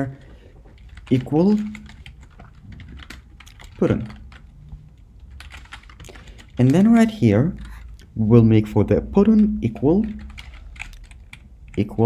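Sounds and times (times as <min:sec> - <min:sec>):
typing on computer keyboard: 0:00.0 - 0:08.0, 0:09.8 - 0:12.0.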